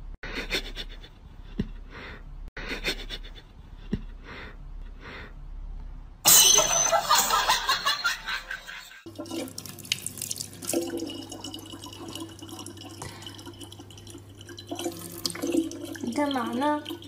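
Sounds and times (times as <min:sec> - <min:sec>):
water trickling into plastic bottle: 0:09.1 - 0:17.0.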